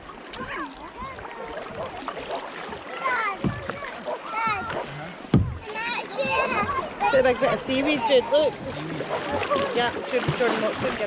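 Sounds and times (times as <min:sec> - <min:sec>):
choppy water against hull: 0:00.0 - 0:11.0
paddle blades splashing: 0:00.0 - 0:11.0
dull thump: 0:03.4 - 0:06.7.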